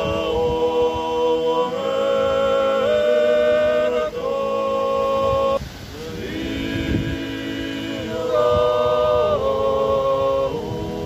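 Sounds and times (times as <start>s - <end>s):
male a cappella ensemble singing: 0.0s - 11.0s.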